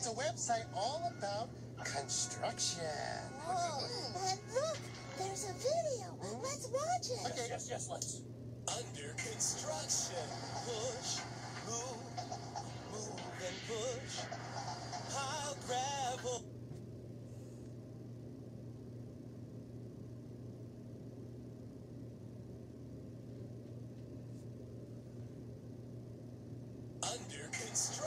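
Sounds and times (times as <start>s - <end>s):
faint low hum: 0.0s - 28.0s.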